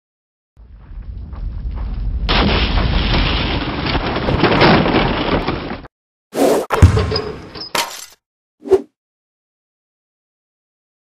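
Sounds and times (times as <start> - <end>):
wooden boards breaking: 2.3 - 5.9.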